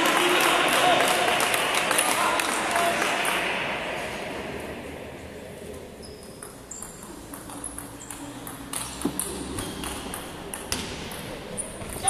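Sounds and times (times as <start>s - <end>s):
table tennis ball pings: 6.2s - 12.0s.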